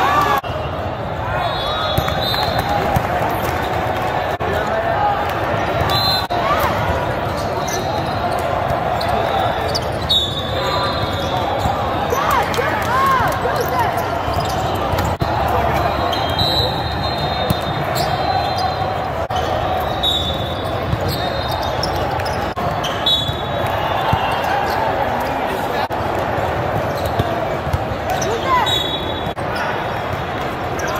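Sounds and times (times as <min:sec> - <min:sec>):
sneaker squeaks on court: 0:07.2 - 0:11.9, 0:13.8 - 0:15.3, 0:15.9 - 0:25.0, 0:26.8 - 0:29.4.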